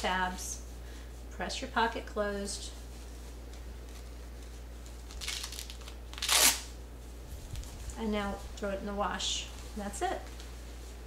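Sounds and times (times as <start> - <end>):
hook-and-loop tab ripping open: 5.1 - 6.7.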